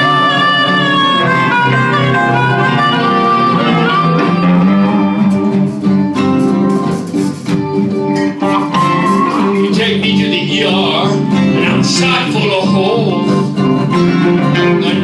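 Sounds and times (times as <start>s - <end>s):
blues band playing: 0.0s - 15.0s
blues harmonica: 0.0s - 15.0s
strummed guitar accents: 0.0s - 15.0s.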